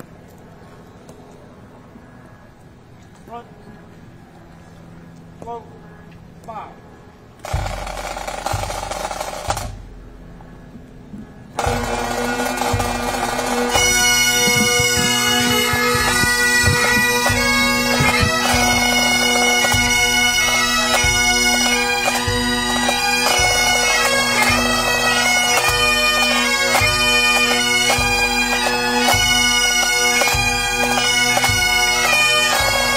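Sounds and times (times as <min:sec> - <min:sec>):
bagpipe drones: 0:11.5 - 0:32.9
drum roll: 0:11.6 - 0:19.9
steady drum beat: 0:11.6 - 0:23.9
bagpipe chanters playing slow tune: 0:11.6 - 0:32.9.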